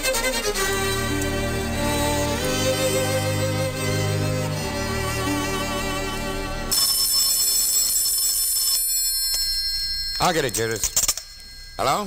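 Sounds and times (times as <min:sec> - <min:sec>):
telephone bell ringing: 0:06.7 - 0:12.0.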